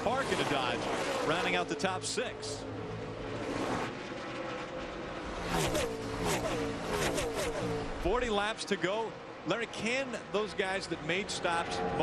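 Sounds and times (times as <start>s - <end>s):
race truck engines passing by: 0.0s - 12.0s.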